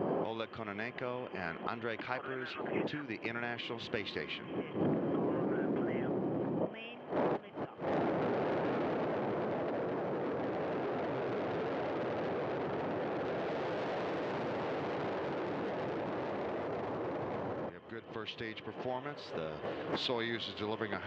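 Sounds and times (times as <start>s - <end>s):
rocket engines roaring: 0.0s - 21.0s.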